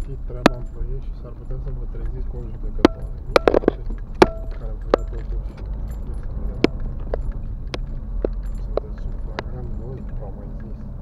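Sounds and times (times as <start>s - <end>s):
car rumbling over rough road: 0.0s - 11.0s.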